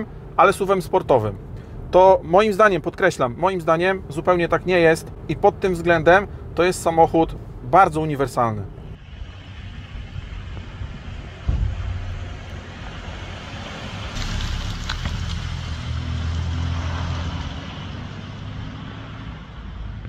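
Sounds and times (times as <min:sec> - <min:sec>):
car engine and exhaust driving past: 0:08.7 - 0:20.0
sharp thump: 0:10.1 - 0:16.0.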